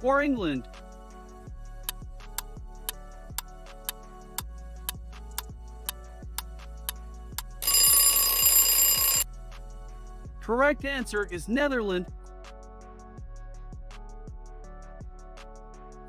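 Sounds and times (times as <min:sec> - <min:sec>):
soft background music: 0:00.0 - 0:16.0
loud alarm bell ringing: 0:07.6 - 0:09.2.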